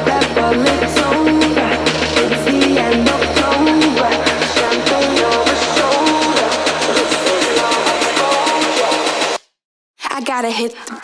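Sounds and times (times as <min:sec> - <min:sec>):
instrumental music with fast beat: 0:00.0 - 0:09.4.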